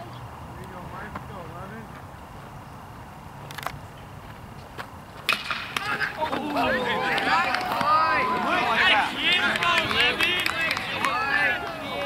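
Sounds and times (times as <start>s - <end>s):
bat cracking against ball: 5.2s - 8.1s, 9.3s - 11.8s
crowd shouting and cheering: 5.7s - 12.0s.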